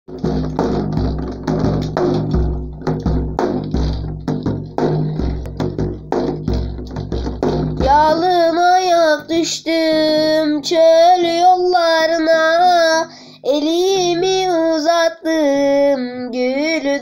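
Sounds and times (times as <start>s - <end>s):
hand-played frame drum: 0.1s - 13.0s.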